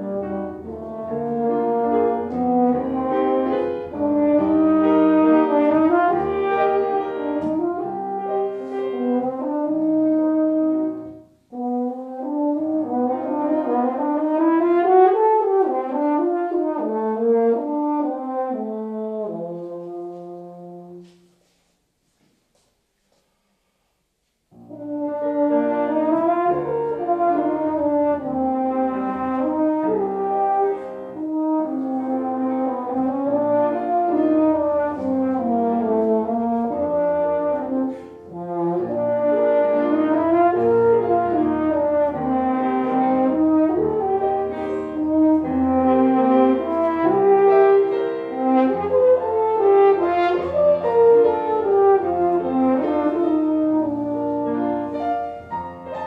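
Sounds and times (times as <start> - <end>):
french horn melody: 0.0 - 21.6, 24.5 - 56.0
piano accompaniment: 0.0 - 22.1, 24.3 - 56.0.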